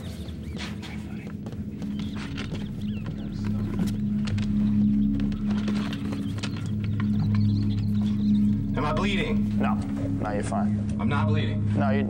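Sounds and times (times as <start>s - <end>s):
rats scrabbling and squeaking: 0.0s - 9.5s
low steady drone: 0.0s - 12.0s
scattered clicks: 0.9s - 8.7s.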